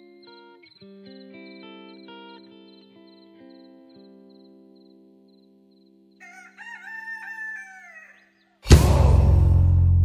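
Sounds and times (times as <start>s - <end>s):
rooster crowing: 6.2s - 8.5s.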